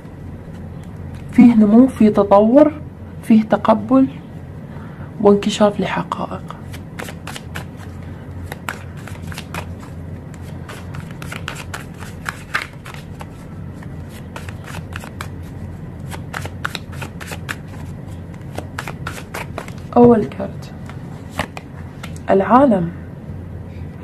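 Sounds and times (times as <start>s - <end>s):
low steady hum: 0.0s - 24.0s
cards being shuffled: 0.4s - 1.4s, 6.6s - 22.3s.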